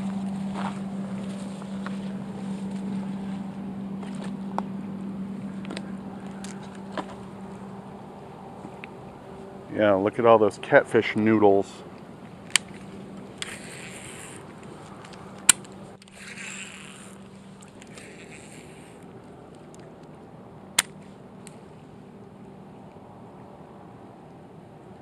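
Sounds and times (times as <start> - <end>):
low steady background: 0.0 - 25.0
fishing reel cranking: 13.4 - 14.4, 15.1 - 19.0.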